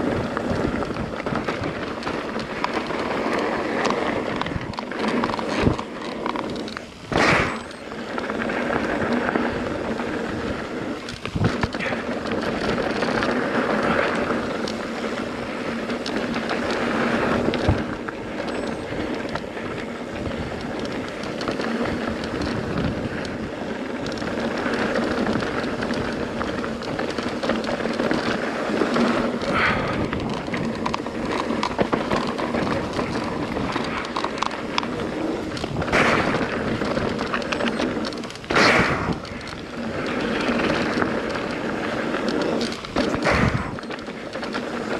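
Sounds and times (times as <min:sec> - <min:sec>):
mountain bike rolling on gravel: 0:00.0 - 0:44.9.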